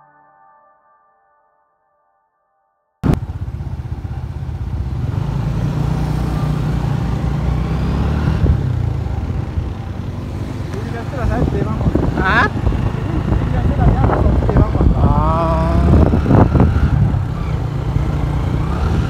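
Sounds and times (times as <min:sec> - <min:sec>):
street traffic: 0:03.0 - 0:19.0
vehicle rumble: 0:03.0 - 0:19.0
indistinct voices: 0:09.0 - 0:16.2.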